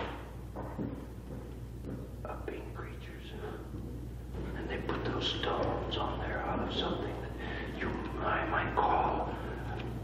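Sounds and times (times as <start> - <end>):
steady low hum: 0.0 - 10.0
person whispering: 2.2 - 3.8, 4.5 - 9.7.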